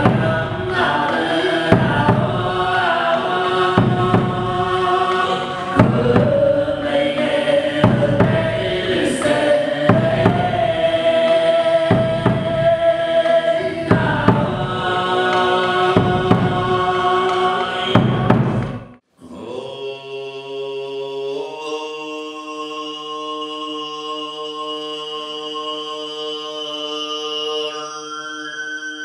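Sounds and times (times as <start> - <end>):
drum beats: 0.0 - 19.0
throat singing: 0.0 - 19.8
high whistling overtone: 25.4 - 29.0.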